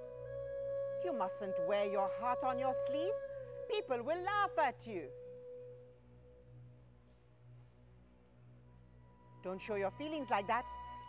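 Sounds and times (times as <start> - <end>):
faint sustained ringing tone: 0.0 - 7.7, 8.6 - 11.0
pulsing low hum: 0.0 - 11.0.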